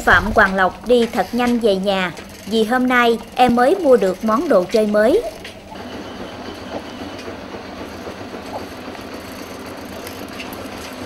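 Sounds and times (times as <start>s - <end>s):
bicycle frame and basket rattling: 0.0s - 5.8s, 7.0s - 11.0s
bicycle rolling on concrete: 0.0s - 11.0s.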